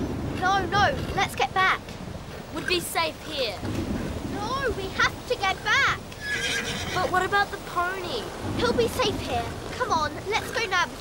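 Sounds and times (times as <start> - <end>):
rain: 0.0 - 11.0
storm wind: 0.0 - 11.0
horses whinnying: 6.1 - 7.1.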